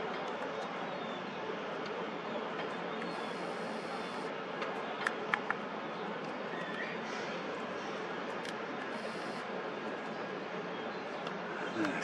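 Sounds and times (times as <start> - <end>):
outdoor hiss: 3.0 - 4.3, 8.9 - 9.5.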